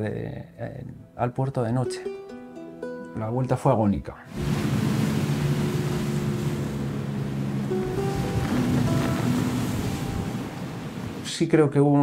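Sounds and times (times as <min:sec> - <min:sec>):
background music of held notes: 0:00.6 - 0:04.3, 0:07.1 - 0:11.1
wind rushing: 0:04.3 - 0:11.3
rough sea around boat: 0:04.3 - 0:11.4.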